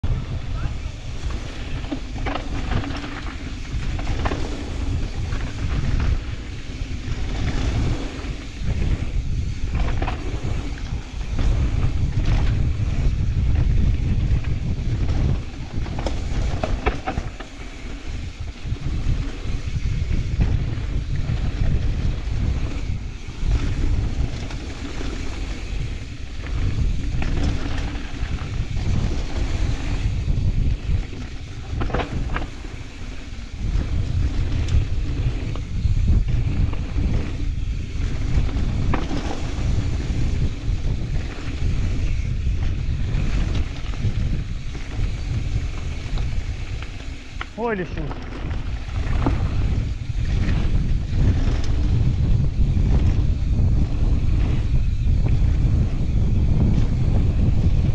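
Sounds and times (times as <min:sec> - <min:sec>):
tyres rolling over gravel: 0:00.0 - 0:57.6
wind rushing over microphone: 0:00.0 - 0:57.9
bike clattering over bumps: 0:00.1 - 0:57.9.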